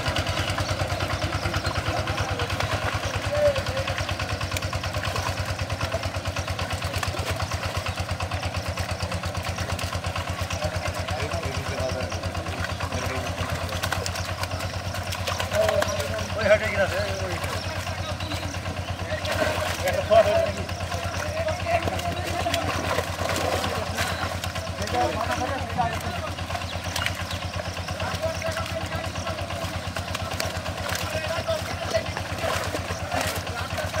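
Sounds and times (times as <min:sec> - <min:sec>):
men talking: 0:00.0 - 0:34.0
small engine running: 0:00.0 - 0:34.0.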